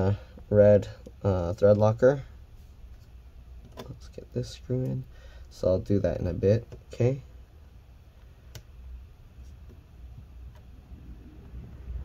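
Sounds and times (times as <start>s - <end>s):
low rumble of handling: 8.0s - 12.0s.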